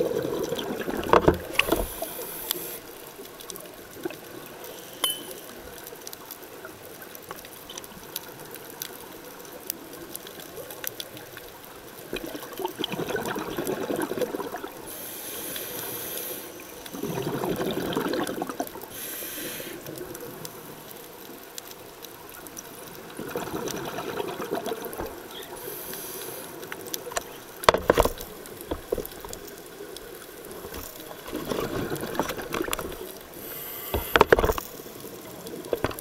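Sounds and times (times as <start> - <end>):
gurgling exhaled bubbles: 0.0 - 2.2, 12.1 - 14.9, 16.9 - 18.9, 23.0 - 25.6, 30.6 - 33.2
faint clicks: 1.4 - 12.4, 24.9 - 36.0
high hiss of inhalation: 1.7 - 2.9, 14.9 - 16.7, 18.9 - 19.8, 25.5 - 26.6, 33.4 - 34.3.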